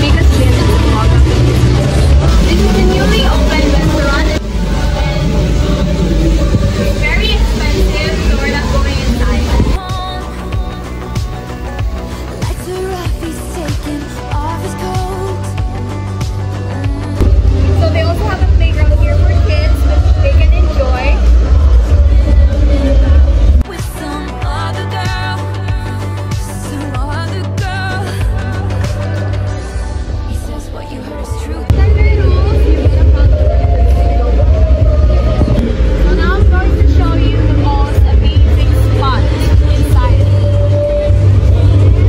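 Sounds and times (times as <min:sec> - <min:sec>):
heavy low rumble: 0:00.0 - 0:23.7, 0:28.2 - 0:42.0
music: 0:00.0 - 0:42.0
people's voices: 0:00.0 - 0:42.0.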